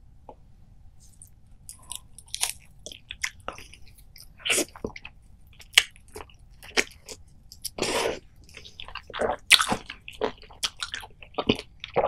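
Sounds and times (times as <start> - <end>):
chewing lemon with rind: 8.4 - 12.0.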